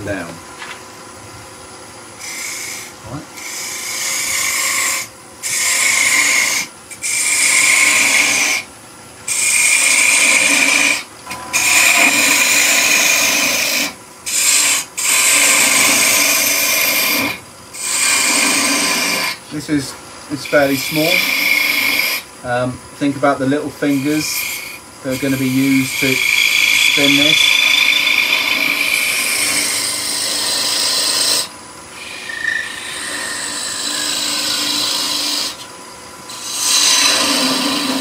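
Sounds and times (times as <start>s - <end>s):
gouge cutting wood on lathe: 2.2s - 8.7s, 9.3s - 19.4s, 20.4s - 22.3s, 23.8s - 35.7s, 36.3s - 38.0s
lathe humming: 2.2s - 38.0s.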